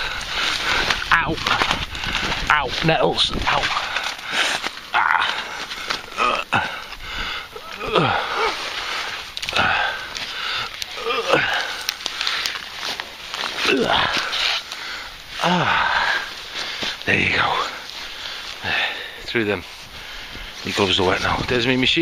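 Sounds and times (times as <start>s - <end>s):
leaves and twigs rustling: 0.0s - 22.0s.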